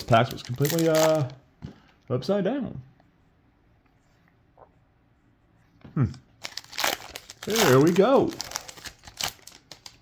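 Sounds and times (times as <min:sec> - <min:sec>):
foil wrapper crinkling and tearing: 0:00.0 - 0:01.4, 0:06.4 - 0:10.0.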